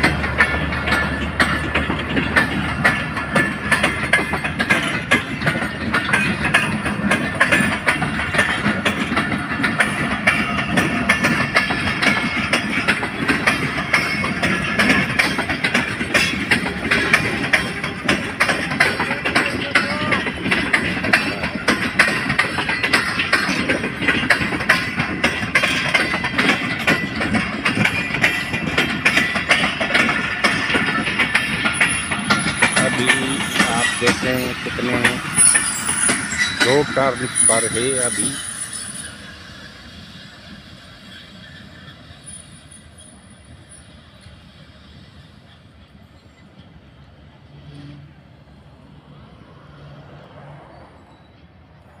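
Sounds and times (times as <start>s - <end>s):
train wheels clicking on rails: 0.0s - 48.0s
train coaches rumbling past: 0.0s - 52.0s.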